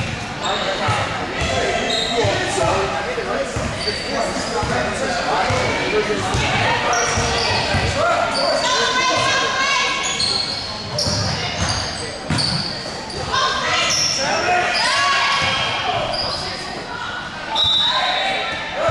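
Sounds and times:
sneakers squeaking on gym floor: 0.0 - 2.8, 3.6 - 5.7, 6.3 - 16.9
players calling: 0.0 - 18.9.

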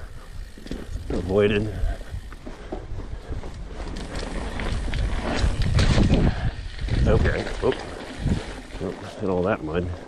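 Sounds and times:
bike rattling clicks: 0.0 - 9.1
bike tyres rumbling on dirt trail: 0.0 - 10.0.

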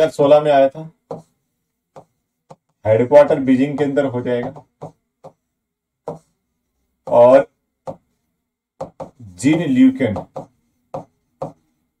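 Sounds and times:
person speaking: 0.0 - 12.0
marker writing on board: 0.8 - 12.0
marker tapping on writing board: 1.0 - 6.4, 7.0 - 8.2, 8.8 - 9.2, 10.0 - 11.8.

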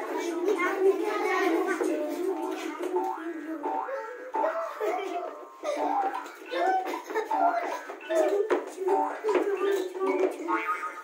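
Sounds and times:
children moving around: 0.0 - 11.0
children's song singing: 0.0 - 11.0.

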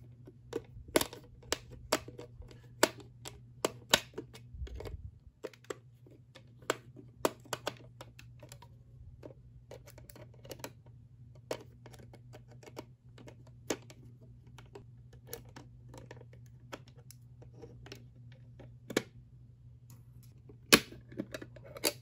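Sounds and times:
fingers handling plastic case: 0.0 - 19.1
low steady hum: 0.0 - 22.0.

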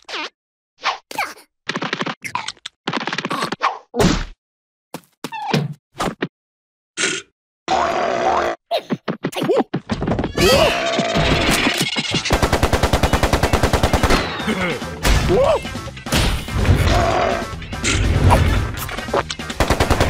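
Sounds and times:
cartoon music with sound effects: 13.8 - 20.0
character grunting: 14.4 - 15.6.

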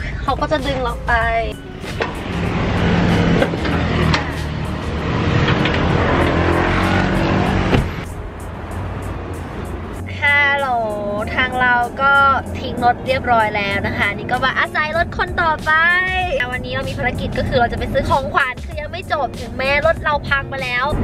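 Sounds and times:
woman speaking: 0.0 - 1.6, 10.1 - 21.0
roadside traffic noise: 0.0 - 21.0
truck engine humming: 0.0 - 21.0.

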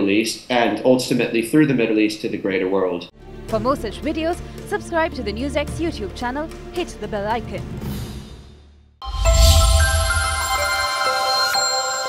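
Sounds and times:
electronic chime music: 9.0 - 12.0.

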